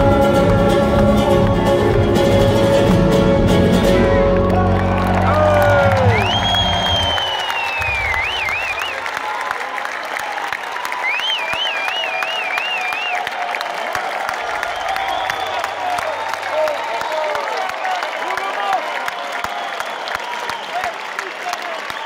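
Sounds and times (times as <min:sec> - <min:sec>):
band music: 0:00.0 - 0:09.1
audience applauding and cheering: 0:00.0 - 0:22.0
falling whistle: 0:05.6 - 0:09.2, 0:11.0 - 0:13.4, 0:14.5 - 0:18.0, 0:19.4 - 0:21.0
warbling whistles: 0:06.0 - 0:09.1, 0:14.6 - 0:17.2.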